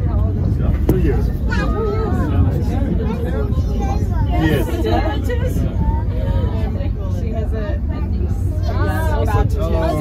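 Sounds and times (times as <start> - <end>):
cable car cabin rumble: 0.0 - 10.0
people talking: 0.0 - 10.0.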